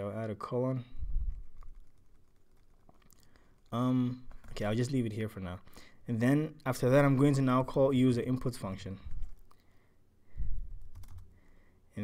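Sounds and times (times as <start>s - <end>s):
computer keyboard keystrokes: 9.1s - 9.6s, 10.8s - 11.3s.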